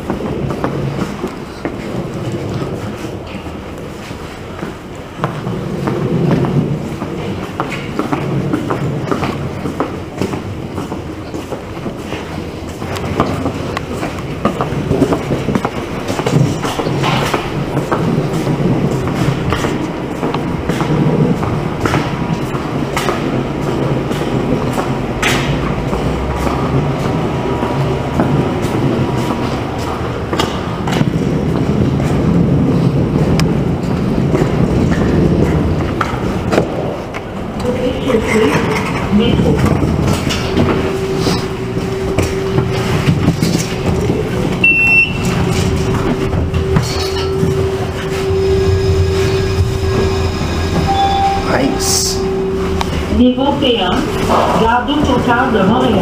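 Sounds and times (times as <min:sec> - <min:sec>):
footsteps: 0:00.0 - 0:56.0
steady rumbling: 0:00.0 - 0:56.0.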